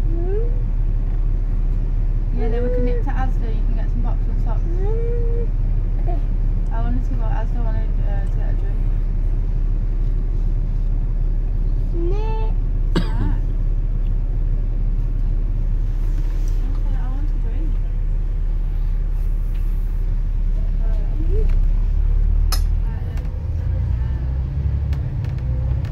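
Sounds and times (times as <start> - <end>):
bus engine rumble: 0.0 - 25.9
sharp click: 22.5 - 22.8.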